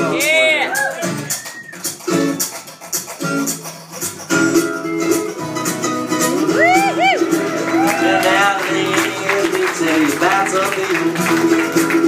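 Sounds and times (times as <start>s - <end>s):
strummed acoustic guitar: 0.0s - 12.0s
person singing: 6.2s - 12.0s.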